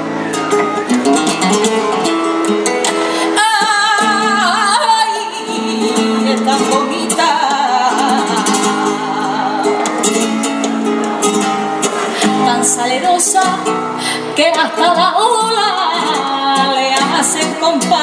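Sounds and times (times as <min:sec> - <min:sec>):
flamenco guitar strumming: 0:00.0 - 0:18.0
woman singing flamenco: 0:00.6 - 0:18.0.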